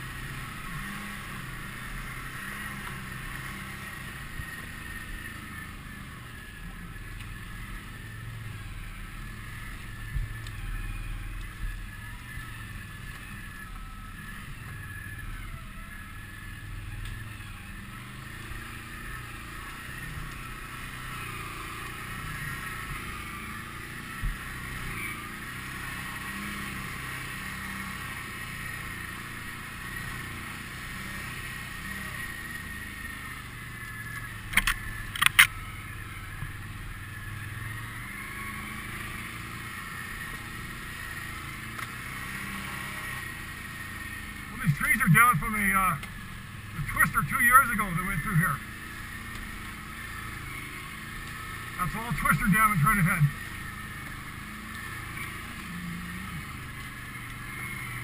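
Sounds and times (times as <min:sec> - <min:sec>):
atv engine running: 0:00.0 - 0:58.0.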